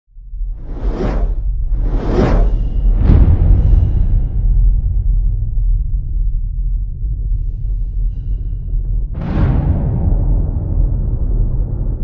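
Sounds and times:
deep low rumble: 0.1 - 12.0
cinematic whoosh: 0.5 - 5.0.

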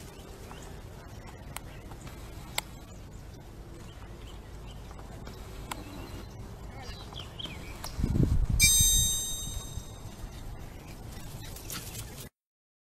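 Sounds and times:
brief high-pitched tone: 8.6 - 10.2.

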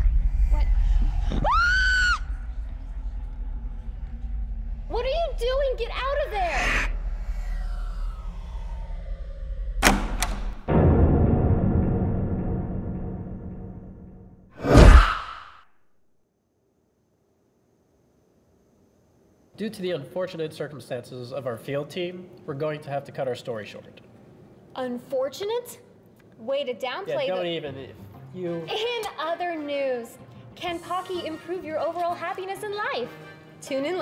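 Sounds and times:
woman screaming high-pitched: 1.4 - 2.2.

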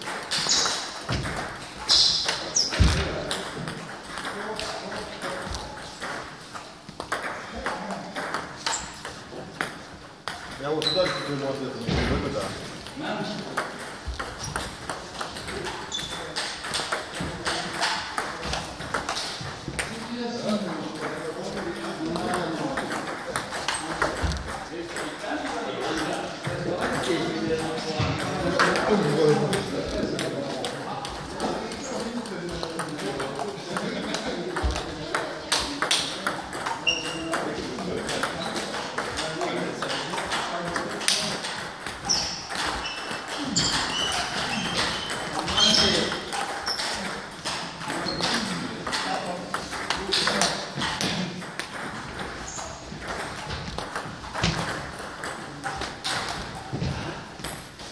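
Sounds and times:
table tennis balls clicking: 0.0 - 57.9.

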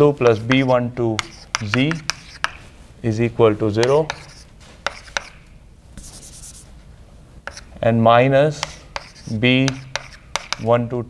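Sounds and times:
chalk scratching on blackboard: 0.2 - 2.7, 3.8 - 5.4, 6.0 - 6.8, 7.5 - 7.7, 8.6 - 10.7
chalk tapping on blackboard: 0.2 - 2.7, 3.8 - 5.4, 6.0 - 6.7, 7.4 - 7.7, 8.5 - 10.7.

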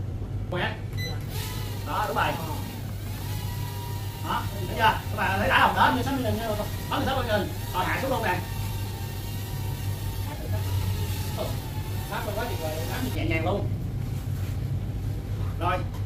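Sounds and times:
steady low hum: 0.0 - 16.0
toy drone propellers whining: 1.3 - 13.2
people talking: 4.2 - 8.4, 10.3 - 13.7.

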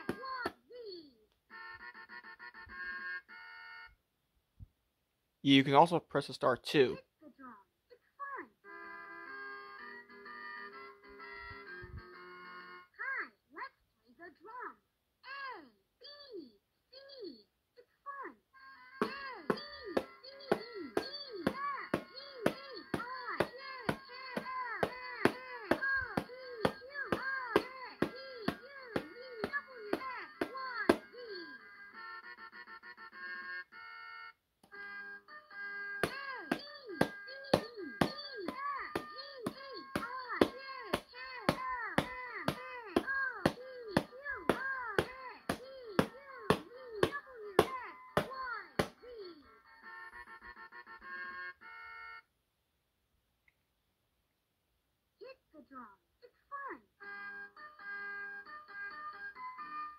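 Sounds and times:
toy electronic drum tones: 36.0 - 49.0.

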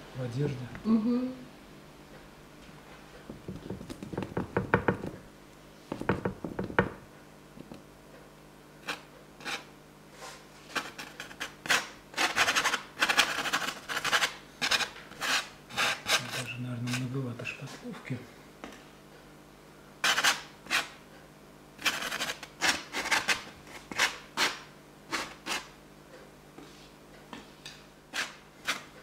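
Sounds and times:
palette knife scraping paste: 8.8 - 17.1, 20.0 - 20.9, 21.8 - 25.7, 28.1 - 29.0.

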